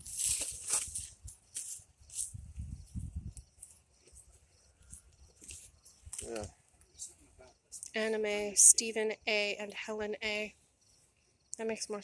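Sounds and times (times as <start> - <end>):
wind rumble on microphone: 2.0 - 3.6.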